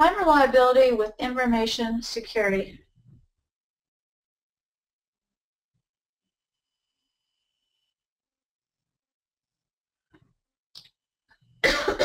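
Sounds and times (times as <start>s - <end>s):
person coughing: 11.6s - 12.0s.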